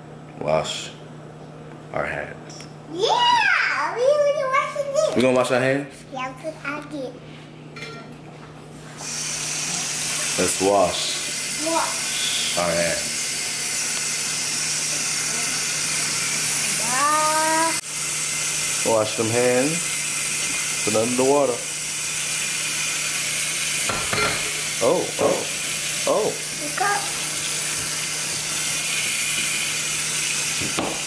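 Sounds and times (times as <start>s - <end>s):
tap water running: 8.9s - 31.0s.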